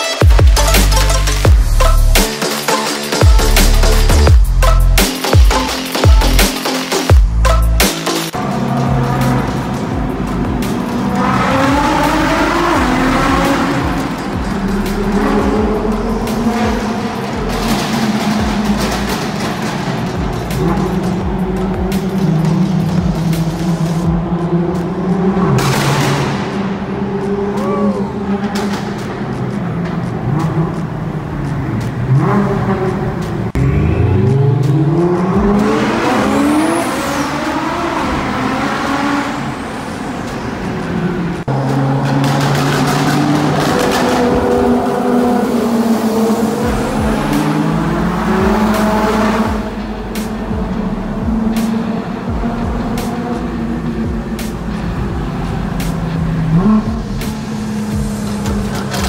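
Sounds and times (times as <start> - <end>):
sports car engines accelerating: 0.0 - 59.0.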